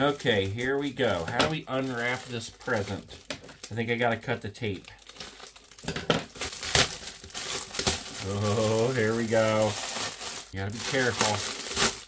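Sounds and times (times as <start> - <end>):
wrapping paper crinkling: 0.0 - 12.0.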